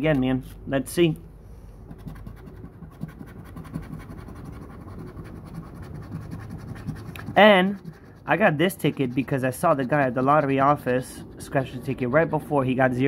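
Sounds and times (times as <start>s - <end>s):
lottery ticket being scratched: 1.9s - 13.0s.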